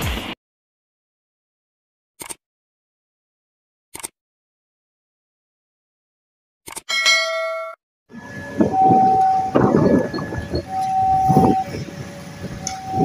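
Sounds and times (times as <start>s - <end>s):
level-crossing warning alarm: 6.9s - 13.0s
traffic: 8.1s - 13.0s
wind noise: 8.1s - 13.0s.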